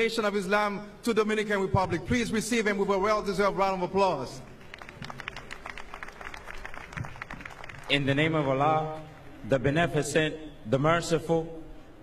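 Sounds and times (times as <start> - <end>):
audience applause: 4.6 - 8.2.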